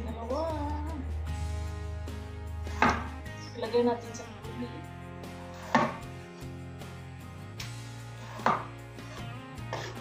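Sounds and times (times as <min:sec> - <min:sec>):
knife chopping on cutting board: 0:02.7 - 0:03.1, 0:05.6 - 0:06.1, 0:08.2 - 0:08.8.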